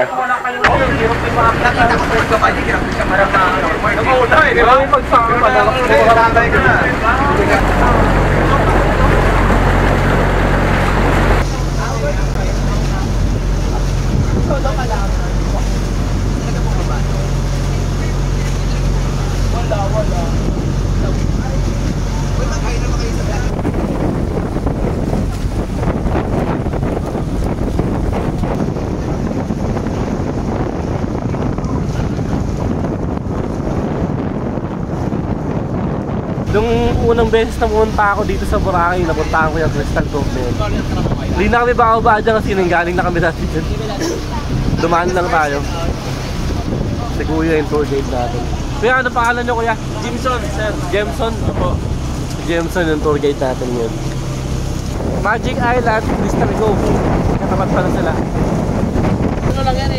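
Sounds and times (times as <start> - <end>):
boat engine humming: 0.0 - 59.9
water noise: 0.0 - 59.9
wind on microphone: 0.6 - 59.9.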